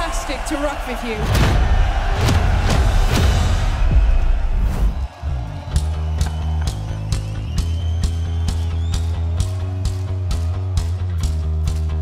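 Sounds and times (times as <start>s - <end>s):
drum and cymbal hits: 1.2s - 11.4s.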